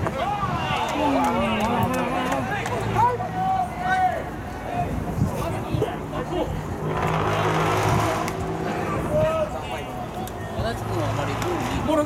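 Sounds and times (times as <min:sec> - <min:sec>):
motor vehicle passing: 0:00.1 - 0:12.0.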